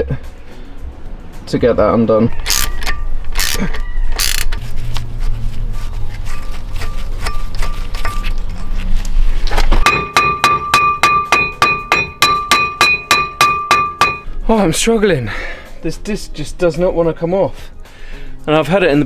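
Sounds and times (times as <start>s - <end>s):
hammer striking ringing metal disc: 6.8s - 8.7s, 9.8s - 14.3s.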